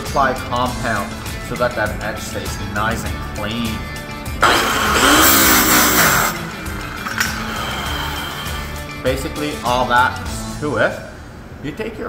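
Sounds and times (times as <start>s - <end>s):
background music: 0.0s - 11.2s
buff rake rasping on buffing wheel: 4.4s - 8.8s
polisher motor whine: 4.4s - 8.9s.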